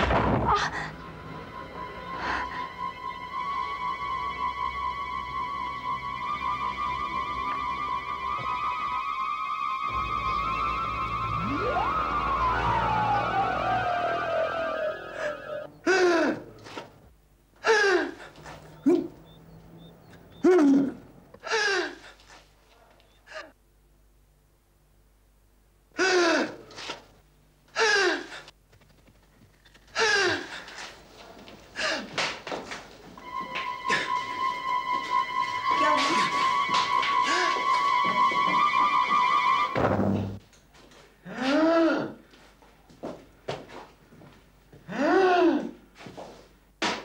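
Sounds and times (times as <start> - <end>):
sustained high note: 0.9 - 15.9, 33.2 - 39.8
woman sobbing: 2.1 - 2.9, 33.8 - 34.6, 35.6 - 37.7
person crying out: 15.1 - 16.6, 35.7 - 36.6, 41.3 - 42.2, 44.9 - 45.8.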